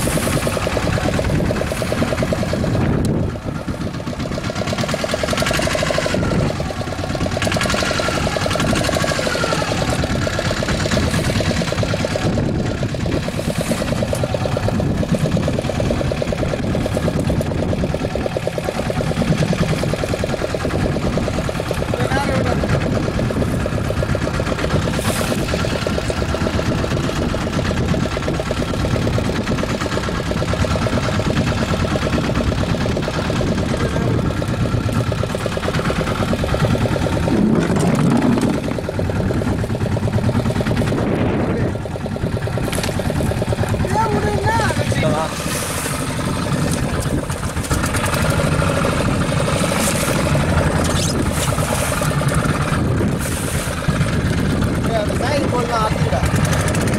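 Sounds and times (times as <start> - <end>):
boat engine running: 0.0 - 56.9
wind and sea rushing: 0.0 - 56.9.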